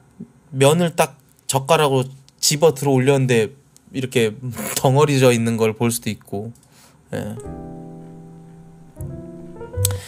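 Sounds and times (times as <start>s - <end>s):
keyboard chords: 7.3s - 10.0s.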